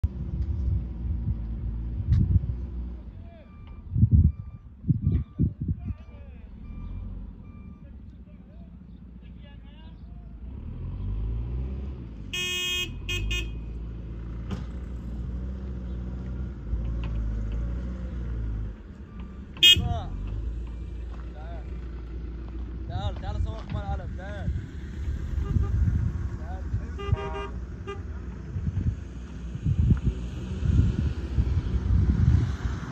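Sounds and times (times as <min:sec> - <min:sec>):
wind rumbling on microphone: 0:00.0 - 0:02.8, 0:03.8 - 0:06.0, 0:23.0 - 0:32.9
short electronic beeps: 0:03.4 - 0:07.8
vehicle horn tooting: 0:12.3 - 0:13.7, 0:19.6 - 0:20.0, 0:25.4 - 0:26.0, 0:26.9 - 0:28.2.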